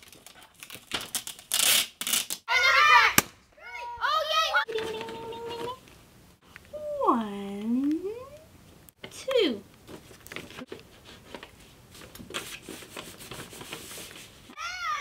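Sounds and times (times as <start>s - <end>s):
paper rustling and crinkling: 0.0s - 1.8s, 9.8s - 14.5s.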